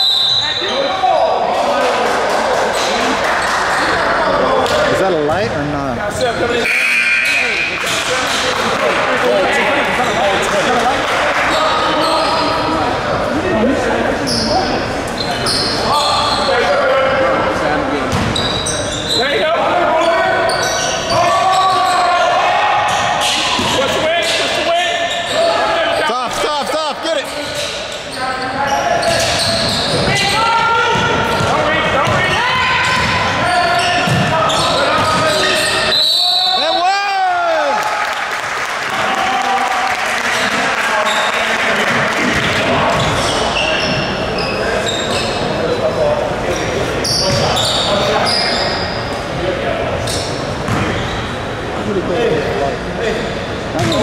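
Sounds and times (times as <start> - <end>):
basketball bouncing on court: 18.1 - 18.5, 30.9 - 33.3, 34.0 - 35.3, 42.2 - 43.2, 53.8 - 54.0
players shouting in gym: 19.2 - 26.7, 28.7 - 38.1.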